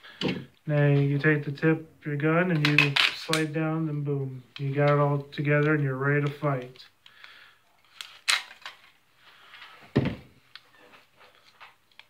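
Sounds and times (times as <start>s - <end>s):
heavy thump: 9.9s - 10.3s.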